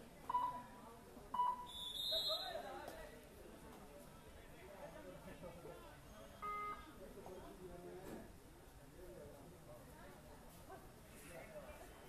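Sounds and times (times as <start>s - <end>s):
faint crowd chatter: 0.0s - 12.0s
referee's whistle: 1.4s - 2.6s.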